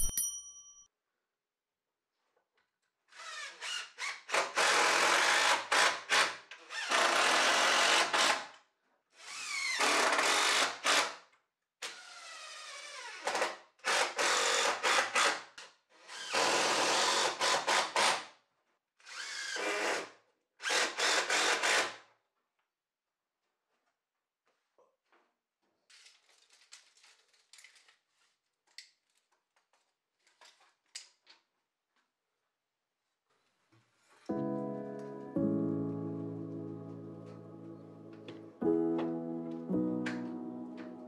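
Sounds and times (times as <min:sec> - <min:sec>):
cordless drill driving screws: 0:03.1 - 0:08.4, 0:09.2 - 0:11.1, 0:16.1 - 0:18.2.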